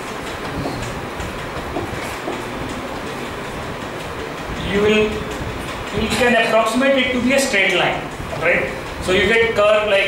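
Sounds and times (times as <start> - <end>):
rumbling hiss of room noise: 0.0 - 10.0.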